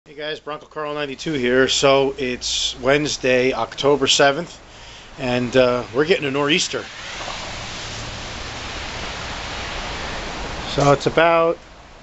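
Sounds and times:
wind: 0:00.1 - 0:12.0
falling snow hiss: 0:01.2 - 0:12.0.

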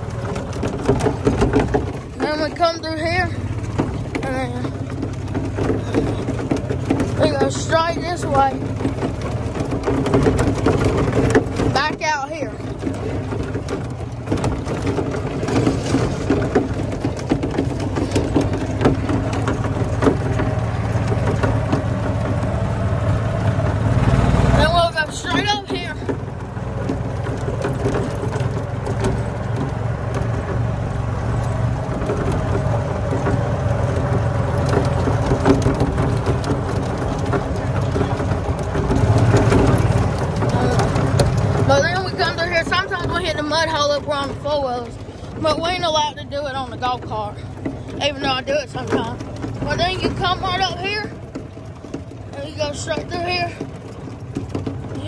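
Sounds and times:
golf cart engine running: 0:00.0 - 0:55.0.

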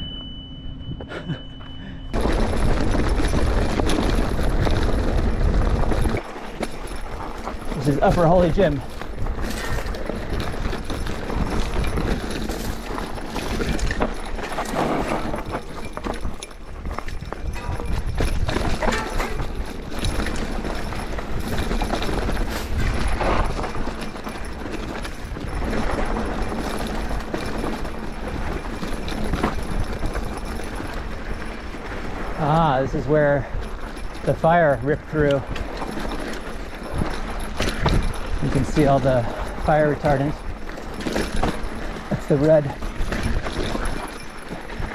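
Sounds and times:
bike knocking and rattling: 0:00.0 - 0:44.9
bike tyres over dirt and stones: 0:02.1 - 0:44.9.

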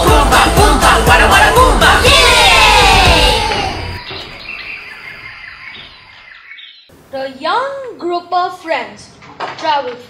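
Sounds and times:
children's song backing track: 0:00.0 - 0:04.0.

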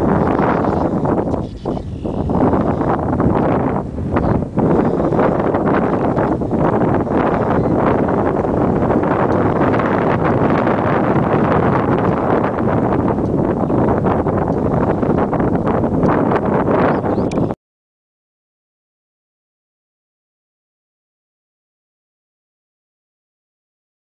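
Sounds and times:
wind buffeting microphone: 0:00.0 - 0:17.6.

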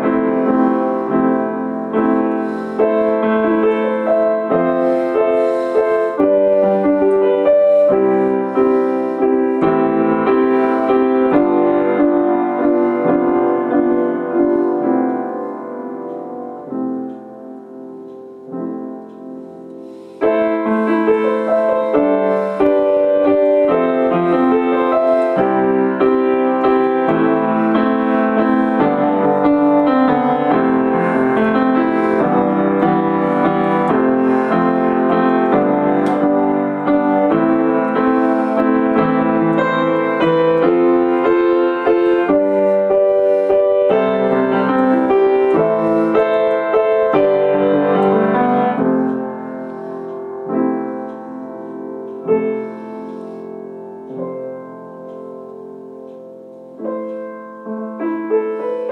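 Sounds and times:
piano improvisation: 0:00.0 - 0:58.9.

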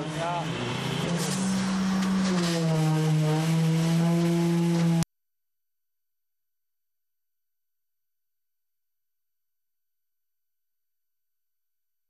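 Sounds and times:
construction machinery droning: 0:00.0 - 0:05.0.

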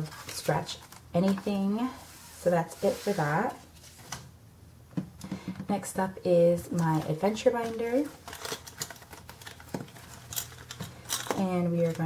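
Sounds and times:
plastic pages rustling: 0:00.0 - 0:01.7, 0:06.7 - 0:12.0.

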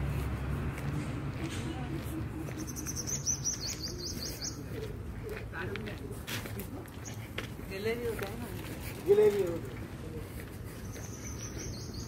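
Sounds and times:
bird chirping: 0:02.0 - 0:04.9, 0:10.8 - 0:12.0.

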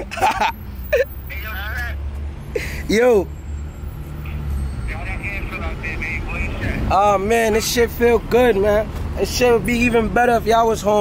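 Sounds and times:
man's voice over speakerphone: 0:01.3 - 0:02.0, 0:04.9 - 0:11.0.

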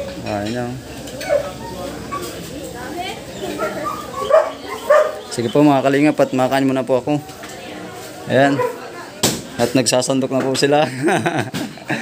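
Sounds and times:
dog whimpering and yipping: 0:01.2 - 0:02.4, 0:03.4 - 0:05.3.

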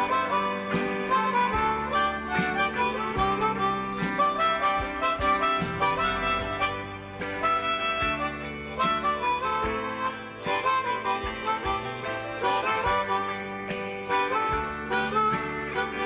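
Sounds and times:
harmonica solo: 0:00.0 - 0:16.0
rock band playing: 0:00.0 - 0:16.0.

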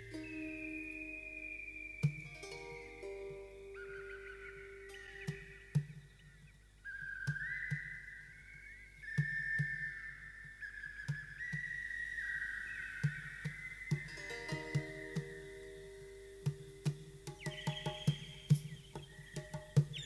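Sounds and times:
sliding held-note melody: 0:00.0 - 0:06.1, 0:13.4 - 0:19.2.

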